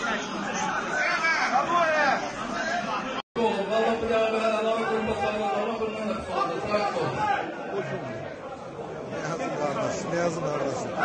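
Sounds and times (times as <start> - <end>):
men's overlapping chatter: 0.0 - 11.0.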